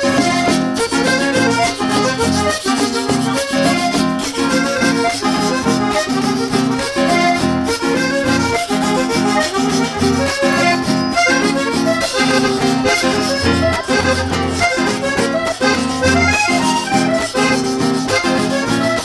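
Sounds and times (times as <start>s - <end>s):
acoustic guitar: 0.0s - 19.0s
button accordion: 0.0s - 19.0s
hand drums: 0.0s - 19.0s.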